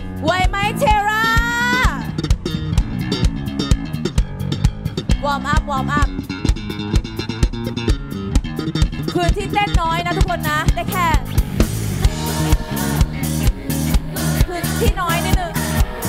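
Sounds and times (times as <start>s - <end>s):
bass guitar: 0.0s - 16.0s
drum kit beat: 0.0s - 16.0s.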